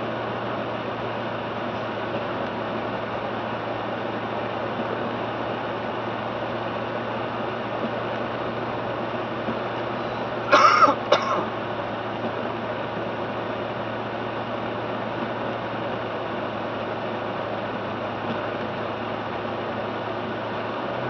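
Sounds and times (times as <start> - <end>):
car road and engine noise: 0.0 - 21.0
person clearing throat: 10.5 - 11.5.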